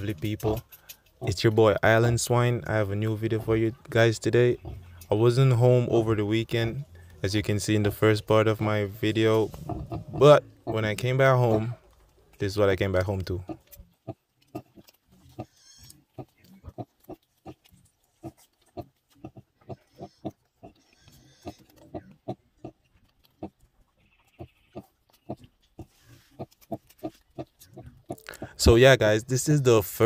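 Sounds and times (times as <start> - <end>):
piglets squeaking: 0.0 - 28.6
sow grunting: 2.6 - 5.1, 8.8 - 11.9, 12.8 - 28.6.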